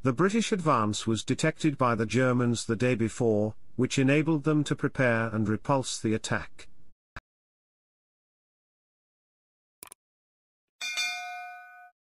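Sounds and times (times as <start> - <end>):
notification bell ding: 10.8 - 12.0.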